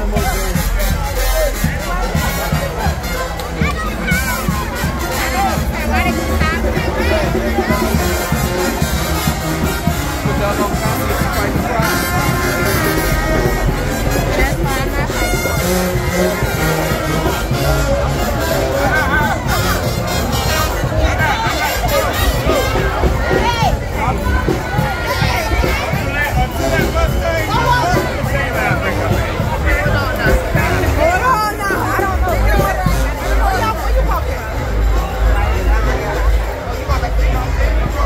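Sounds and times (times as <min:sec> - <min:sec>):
brass band playing: 0:00.0 - 0:38.0
crowd talking and shouting: 0:00.0 - 0:38.0.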